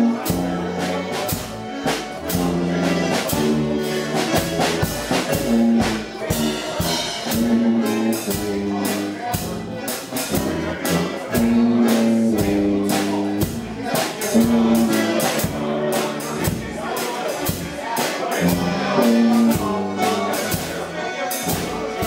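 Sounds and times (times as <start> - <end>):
concertina playing chords: 0.0 - 22.0.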